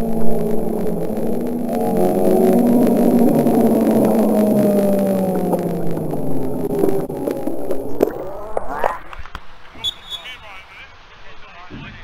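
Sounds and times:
distant players calling out: 9.7s - 12.0s.

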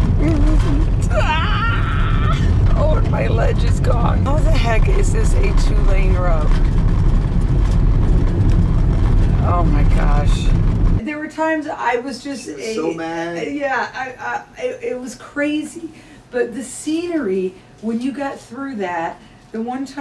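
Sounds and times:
vehicle rumbling on gravel road: 0.0s - 11.0s
voices talking: 12.2s - 13.6s.

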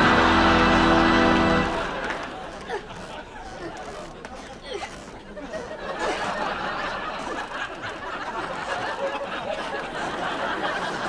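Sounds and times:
audience laughing: 0.0s - 11.0s.

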